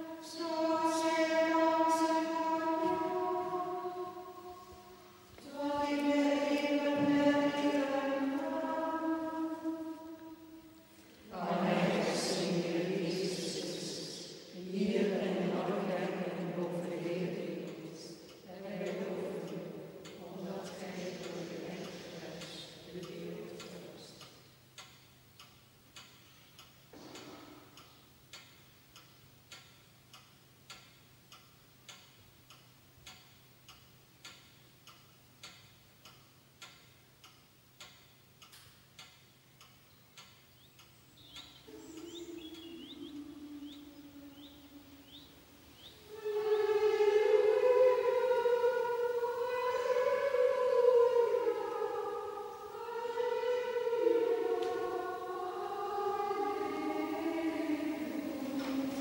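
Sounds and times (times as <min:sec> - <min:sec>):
slow singing in high voices: 0:00.0 - 0:24.4, 0:40.0 - 0:59.0
faint hum: 0:00.0 - 0:59.0
clock ticking: 0:17.2 - 0:43.8
held musical tones: 0:41.3 - 0:59.0.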